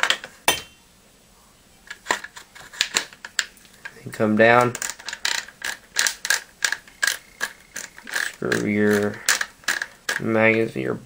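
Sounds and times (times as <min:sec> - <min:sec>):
shotgun cap ratcheting clicks: 0:04.6 - 0:10.3.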